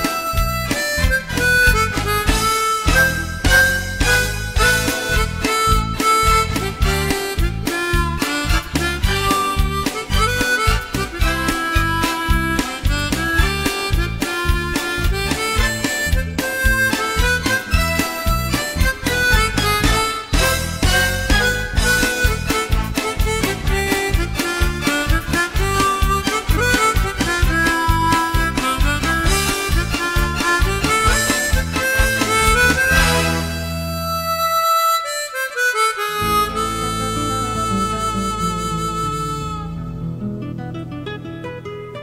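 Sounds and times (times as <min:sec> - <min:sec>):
harmonica melody: 0:00.0 - 0:41.9
guitar accompaniment: 0:00.0 - 0:42.0.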